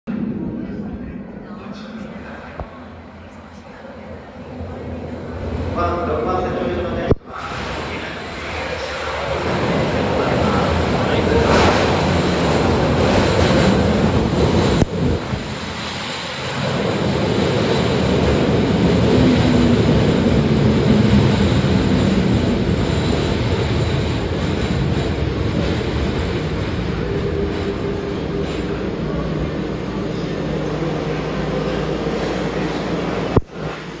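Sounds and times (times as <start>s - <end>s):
train wheels rumbling: 4.1s - 34.0s.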